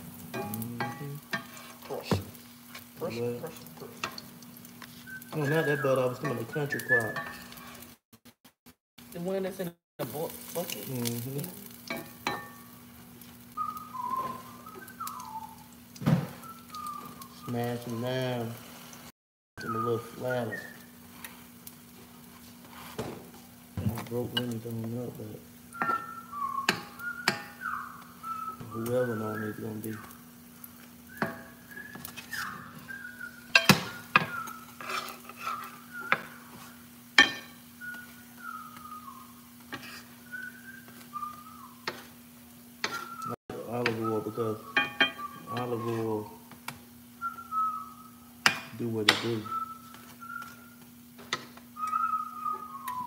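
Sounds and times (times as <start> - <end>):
pancakes frying: 0.0 - 8.3, 9.0 - 53.0
metal spatula scraping a skillet: 0.3 - 2.0, 6.2 - 8.0, 31.2 - 32.9, 33.5 - 37.6, 39.7 - 40.2, 42.8 - 43.2
person whistling a tune: 5.0 - 7.4, 13.6 - 15.7, 16.4 - 18.2, 19.6 - 20.9, 25.7 - 30.2, 31.1 - 34.7, 35.4 - 36.5, 37.8 - 39.5, 40.2 - 41.9, 42.9 - 46.5, 47.2 - 48.2, 49.2 - 50.8, 51.8 - 53.0.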